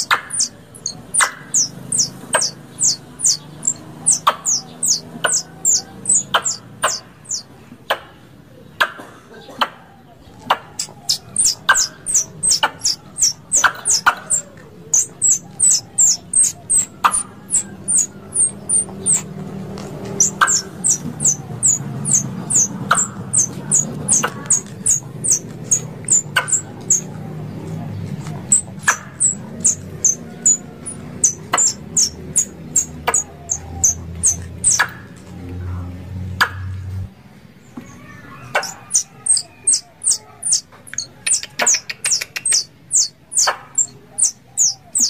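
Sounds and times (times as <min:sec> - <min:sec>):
squirrel chirping: 0:00.0 - 0:08.0, 0:10.3 - 0:35.2, 0:38.0 - 0:45.0.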